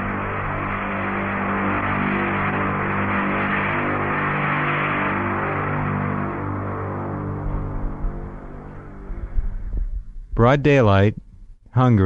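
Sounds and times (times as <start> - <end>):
loud drone of low tones: 0.0 - 11.6.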